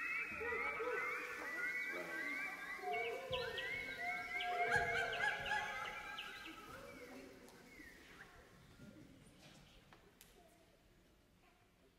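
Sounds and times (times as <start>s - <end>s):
choir making bird-like calls: 0.0s - 8.5s.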